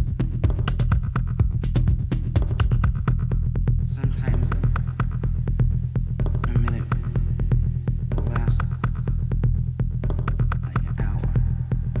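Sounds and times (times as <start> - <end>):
throbbing electronic bass pulse: 0.0 - 12.0.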